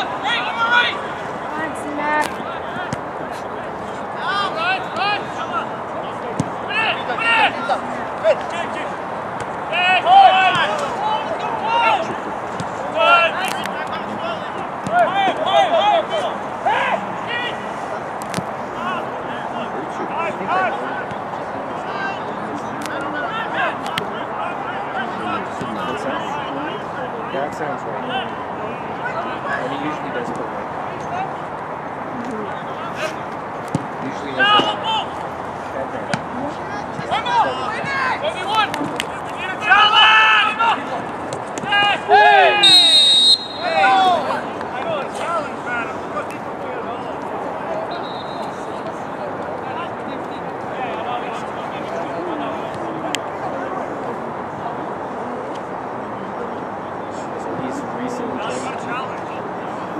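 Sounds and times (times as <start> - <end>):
players and onlookers shouting: 0.0 - 3.3, 4.1 - 17.8, 34.3 - 35.2, 36.7 - 47.1
crowd noise: 0.0 - 59.9.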